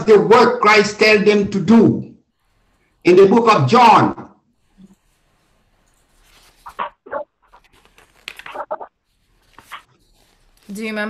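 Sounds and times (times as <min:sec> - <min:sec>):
dog barking: 0:06.7 - 0:07.3.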